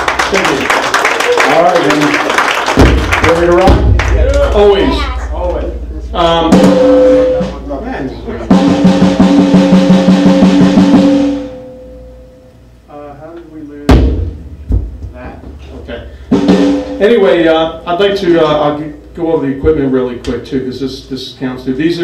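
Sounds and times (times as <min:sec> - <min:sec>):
drum kit: 0:02.6 - 0:12.0, 0:13.7 - 0:18.7
crash cymbal ringing: 0:05.9 - 0:07.7.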